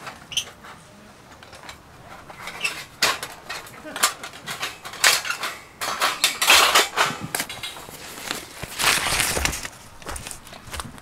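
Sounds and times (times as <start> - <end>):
steel plates clanking and rattling: 1.4 - 9.6.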